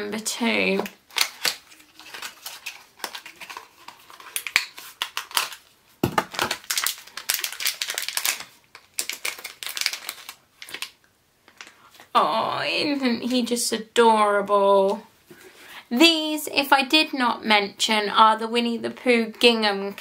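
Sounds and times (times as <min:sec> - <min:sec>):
bag tearing and crinkling: 0:01.0 - 0:11.0.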